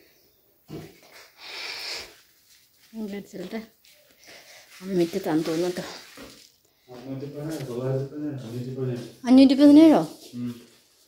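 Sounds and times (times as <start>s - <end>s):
long breathy hiss: 1.2s - 2.3s.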